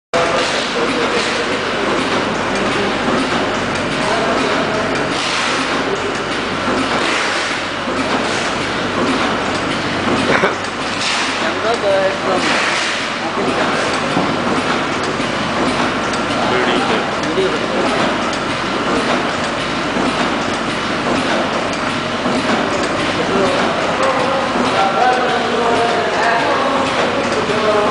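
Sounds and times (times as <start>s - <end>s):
faint machine hum: 0.2s - 27.9s
packing machine clatter: 0.2s - 27.9s.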